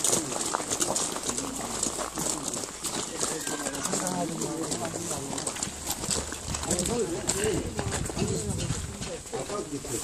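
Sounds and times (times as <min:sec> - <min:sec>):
people talking indistinctly: 0:00.2 - 0:10.0.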